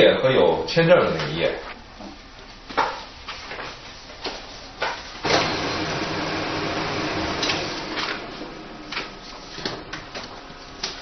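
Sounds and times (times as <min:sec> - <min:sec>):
photocopier running: 0:04.2 - 0:11.0.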